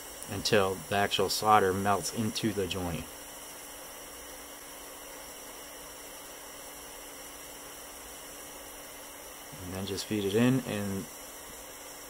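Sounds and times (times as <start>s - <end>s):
soldering iron hissing: 0.0s - 12.0s.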